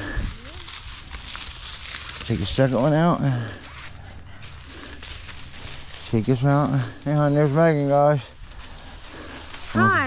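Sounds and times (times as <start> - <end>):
dry grass rustling and crackling: 0.0 - 10.0.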